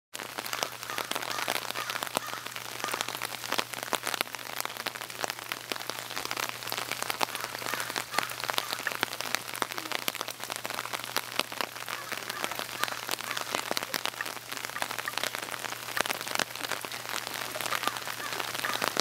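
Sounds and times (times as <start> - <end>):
steady rain falling: 0.1 - 19.0.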